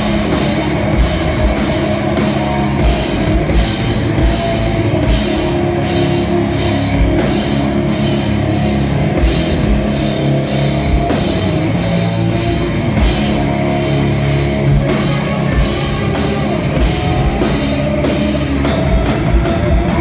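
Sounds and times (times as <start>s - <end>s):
rock band playing live: 0.0s - 20.0s.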